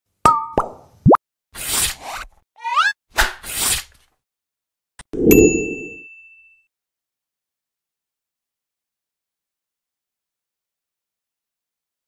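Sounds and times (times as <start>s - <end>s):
high ringing ding: 5.3s - 6.7s.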